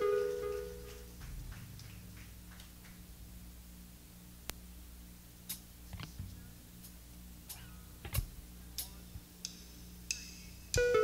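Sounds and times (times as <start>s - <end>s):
low amplifier hum: 0.0s - 11.0s.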